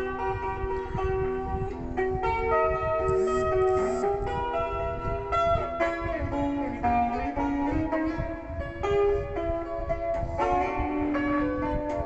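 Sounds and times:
electric guitar melody: 0:00.0 - 0:12.0.

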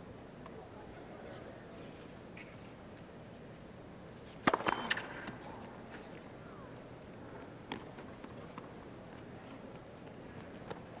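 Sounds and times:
low crowd noise: 0:00.0 - 0:11.0
tennis ball pops: 0:04.4 - 0:05.4.

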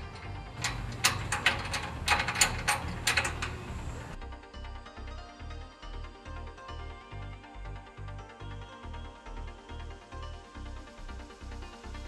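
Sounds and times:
metallic clicks and clanks: 0:00.0 - 0:04.2
background music: 0:00.0 - 0:12.0.

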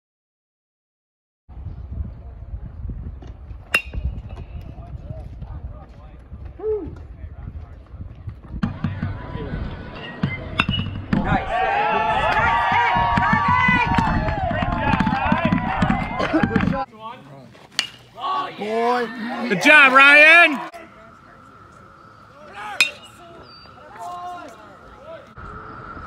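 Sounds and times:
people cheering and shouting: 0:08.6 - 0:16.9, 0:18.1 - 0:25.4
baseball bat cracking ball: 0:17.7 - 0:18.2, 0:22.7 - 0:24.1.

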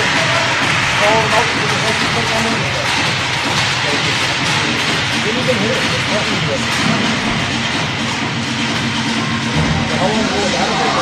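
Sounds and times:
ice rink noise: 0:00.0 - 0:11.0.

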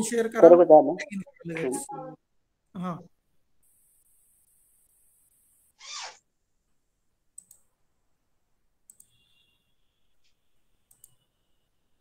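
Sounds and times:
faint short high tone: 0:01.6 - 0:02.2
faint clicks: 0:07.4 - 0:07.7, 0:08.9 - 0:09.2, 0:10.2 - 0:11.2.

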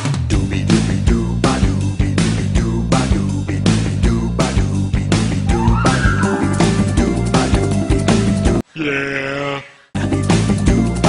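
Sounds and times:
upbeat theme music: 0:00.0 - 0:08.6, 0:10.0 - 0:11.0
goat screaming: 0:05.5 - 0:06.9.

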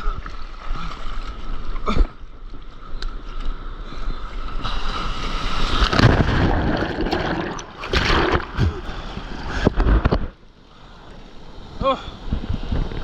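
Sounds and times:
sea water splashing: 0:04.5 - 0:10.1.

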